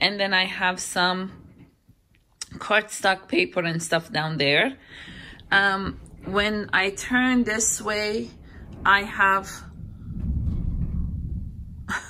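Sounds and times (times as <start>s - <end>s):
snow sliding off roof rumble: 6.2s - 12.0s.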